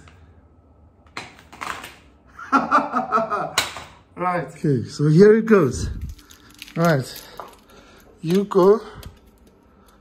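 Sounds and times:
cable rustling and clattering: 0:05.8 - 0:10.0.

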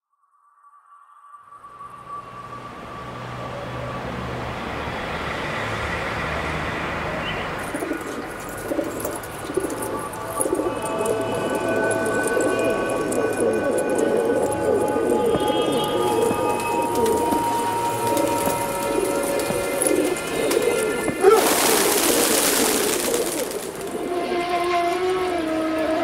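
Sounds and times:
pigeons cooing: 0:07.5 - 0:25.8.

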